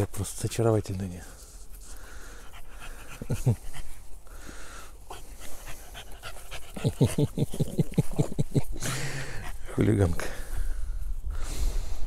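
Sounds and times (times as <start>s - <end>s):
puppy panting: 2.3s - 4.3s, 5.0s - 10.0s.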